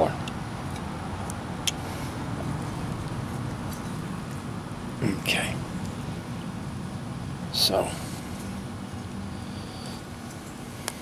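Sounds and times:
steady low rumble: 0.1s - 10.8s.

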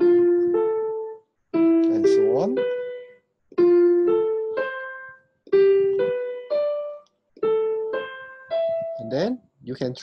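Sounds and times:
piano broken chords: 0.0s - 9.5s.

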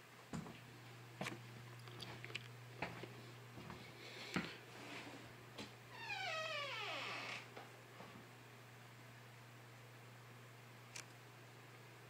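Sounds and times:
steady low hum: 0.0s - 6.0s.

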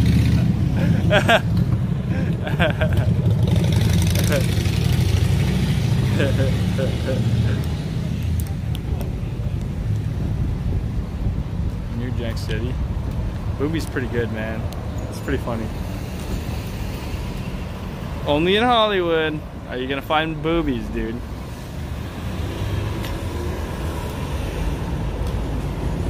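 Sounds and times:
car engine rumbling: 0.0s - 18.5s
voices: 6.0s - 9.7s.

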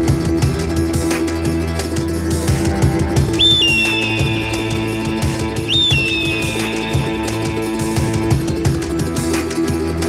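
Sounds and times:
backing track with steady beat: 0.0s - 10.0s
hand-held whistle gliding down: 3.4s - 7.8s.

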